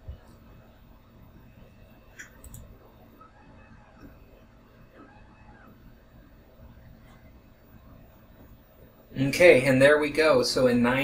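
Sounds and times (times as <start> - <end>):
computer mouse clicks: 2.2 - 2.7.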